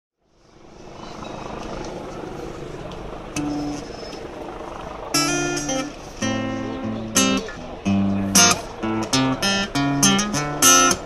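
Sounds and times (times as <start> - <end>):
traffic: 0.2 - 11.0
crowd noise: 0.4 - 11.0.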